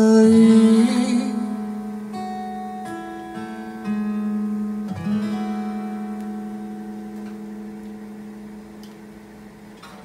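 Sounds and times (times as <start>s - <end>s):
acoustic guitar chord ringing: 0.0s - 10.0s.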